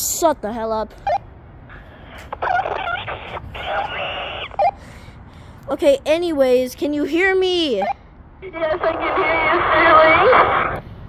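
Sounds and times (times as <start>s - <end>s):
voice through walkie-talkie: 2.4s - 4.6s, 8.4s - 10.8s.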